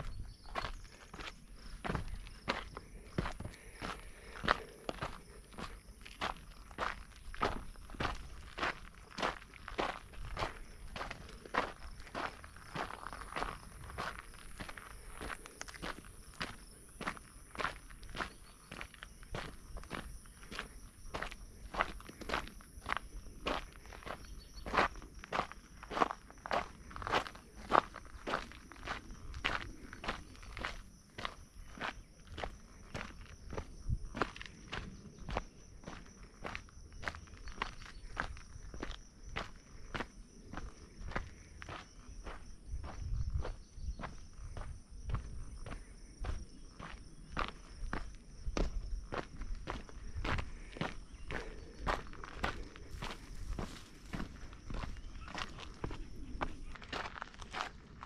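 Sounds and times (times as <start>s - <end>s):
footsteps crunching on dirt trail: 0.0s - 58.0s.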